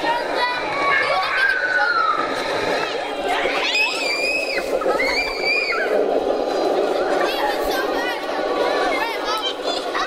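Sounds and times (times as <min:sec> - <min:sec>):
crowd chatter: 0:00.0 - 0:10.0
high-pitched squeals: 0:00.7 - 0:07.3.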